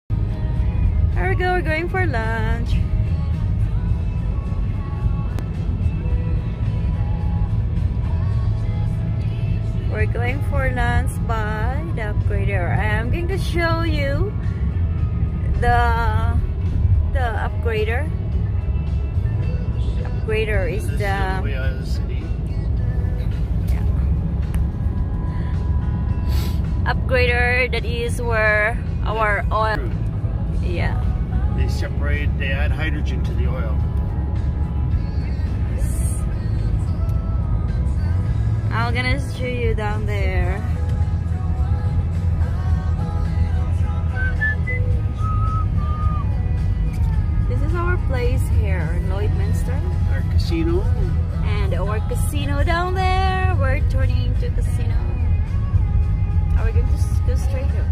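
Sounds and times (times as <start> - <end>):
car road rumble: 0.1 - 57.9
faint music: 0.1 - 57.9
high whistle-like tune: 44.1 - 46.3.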